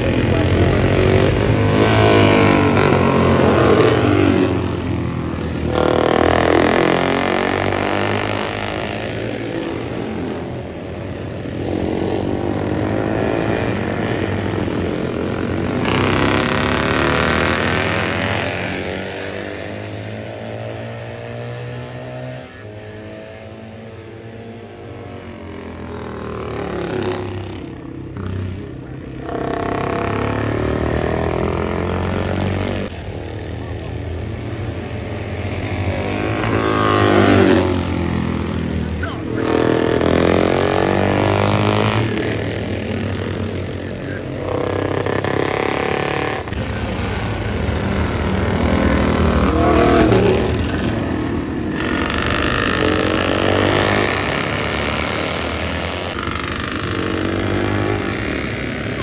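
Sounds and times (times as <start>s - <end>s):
racing motorcycles passing: 0.0s - 59.0s.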